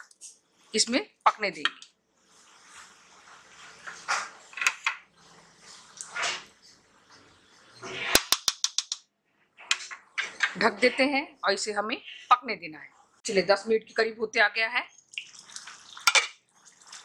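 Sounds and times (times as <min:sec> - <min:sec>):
spatula stirring and scraping: 0:00.0 - 0:08.2
gravy boiling in a pan: 0:01.9 - 0:08.2, 0:14.8 - 0:17.0.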